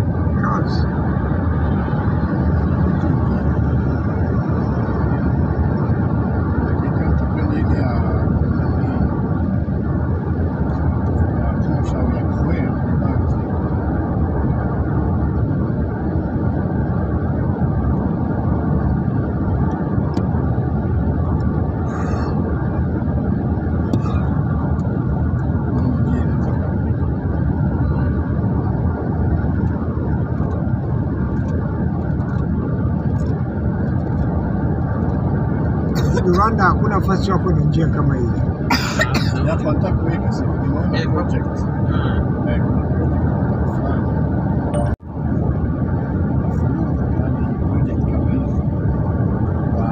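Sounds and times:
road and engine rumble: 0.0 - 49.9.

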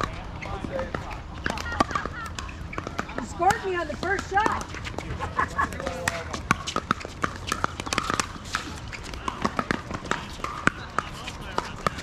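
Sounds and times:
players' voices: 0.0 - 12.0.

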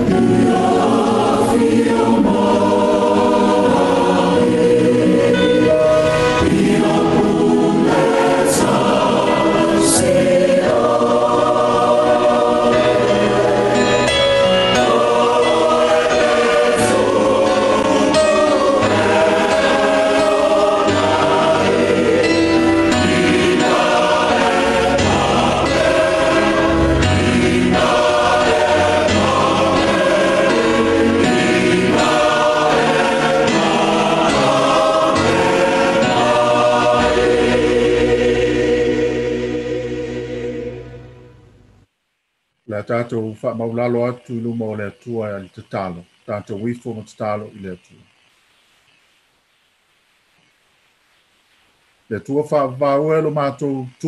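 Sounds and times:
choir singing a hymn: 0.0 - 41.5
steady bass accompaniment: 0.0 - 41.9.

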